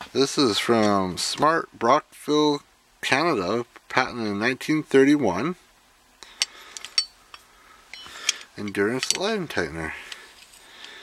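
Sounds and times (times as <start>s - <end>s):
metal ratchet clinking and clicking: 6.3s - 9.4s.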